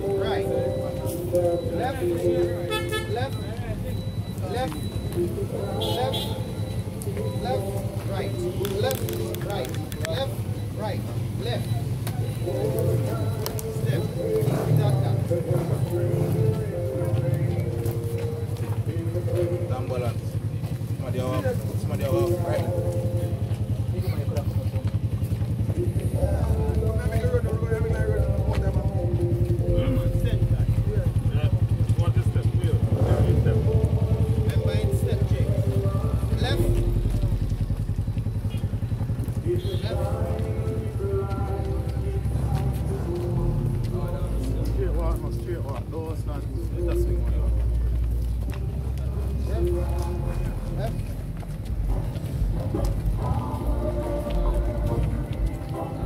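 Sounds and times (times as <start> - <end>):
low engine rumble: 0.0 - 56.0
slow singing voices: 4.6 - 10.8, 11.9 - 19.7, 25.2 - 30.9, 32.9 - 45.5, 46.6 - 56.0.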